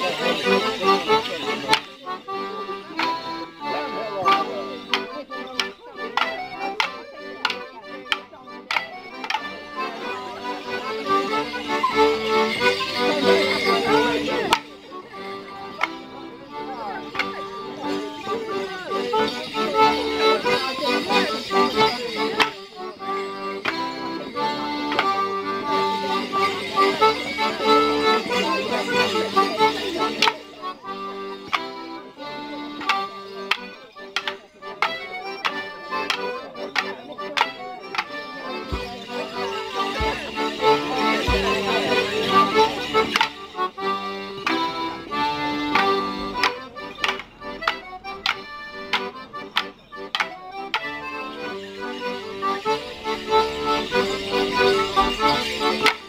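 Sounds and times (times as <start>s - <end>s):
bells jingling: 0.0s - 56.0s
folk dance tune: 0.0s - 56.0s
wooden sticks clacking: 1.7s - 1.9s, 4.2s - 9.6s, 14.5s - 14.7s, 22.4s - 22.6s, 32.8s - 43.4s, 45.7s - 51.0s, 55.6s - 56.0s.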